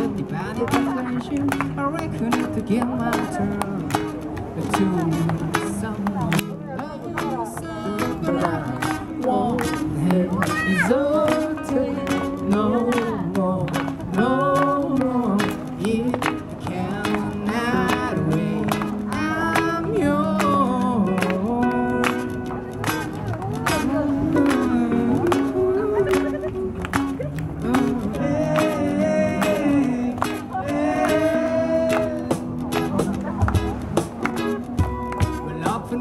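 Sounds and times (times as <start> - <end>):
person singing: 0.0 - 33.4
cajon beats: 0.0 - 36.0
strummed acoustic guitars: 0.0 - 36.0.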